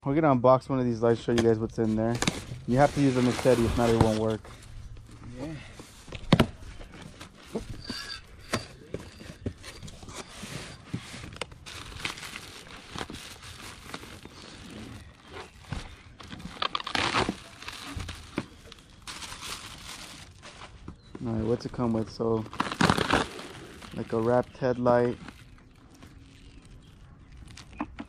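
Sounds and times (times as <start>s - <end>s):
plastic packaging rustling: 1.4s - 5.2s, 6.1s - 28.0s.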